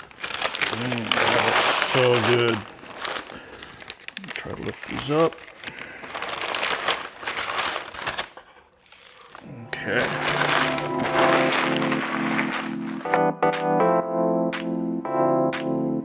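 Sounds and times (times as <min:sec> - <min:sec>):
paper crinkling: 0:00.0 - 0:13.2
background music with held notes: 0:09.4 - 0:16.0.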